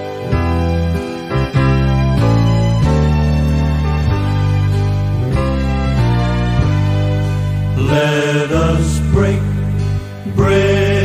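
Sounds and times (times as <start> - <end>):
male voices singing in harmony: 7.8 - 11.0.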